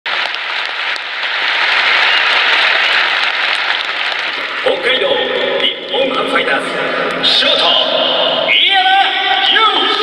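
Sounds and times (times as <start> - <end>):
stadium crowd applauding: 0.0 - 5.8, 9.4 - 10.0.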